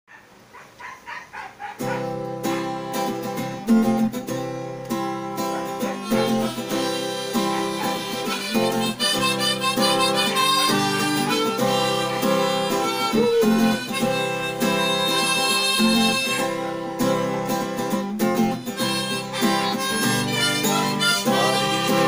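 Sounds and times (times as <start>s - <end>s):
strummed acoustic guitar: 1.8s - 22.0s
harmonica playing: 1.9s - 22.0s.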